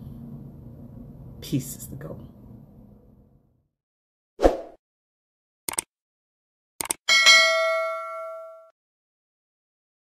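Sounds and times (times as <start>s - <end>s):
double mouse click: 5.7s - 5.9s, 6.8s - 7.0s
notification bell ding: 7.1s - 8.8s.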